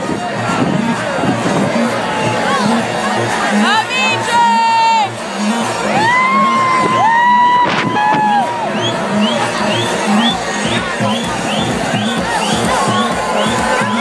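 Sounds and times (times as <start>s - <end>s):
crowd cheering and whooping: 0.0s - 14.0s
electronic dance music: 0.0s - 14.0s.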